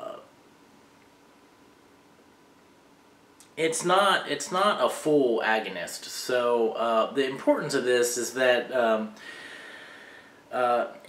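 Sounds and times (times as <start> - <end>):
man saying uh: 0.0 - 0.3, 3.6 - 9.2, 10.5 - 11.0
faint steady hum: 0.0 - 11.0.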